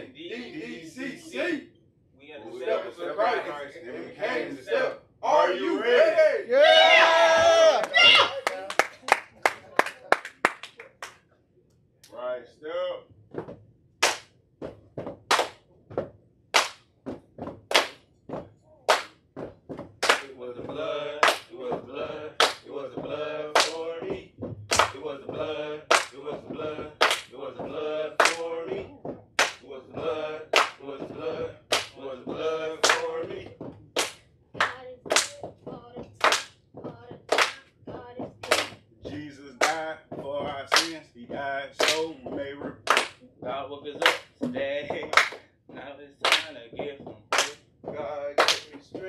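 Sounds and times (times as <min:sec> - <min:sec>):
short chanted voices: 0:00.0 - 0:01.7, 0:02.4 - 0:08.4, 0:20.0 - 0:35.4
claps body slaps and stomps: 0:14.0 - 0:20.3, 0:21.2 - 0:21.5, 0:22.4 - 0:22.7, 0:23.5 - 0:23.8, 0:24.4 - 0:25.0, 0:25.9 - 0:26.2, 0:27.0 - 0:27.3, 0:28.2 - 0:28.5, 0:29.4 - 0:29.6, 0:30.5 - 0:30.8, 0:31.7 - 0:32.0, 0:32.8 - 0:33.2, 0:34.0 - 0:38.9, 0:39.6 - 0:41.0, 0:41.8 - 0:43.2, 0:44.0 - 0:45.4, 0:46.2 - 0:47.6, 0:48.4 - 0:49.0.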